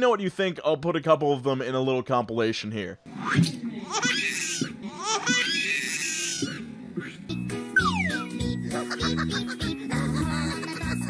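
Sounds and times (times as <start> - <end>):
high-pitched baby squeals: 3.9 - 6.6, 7.8 - 8.4.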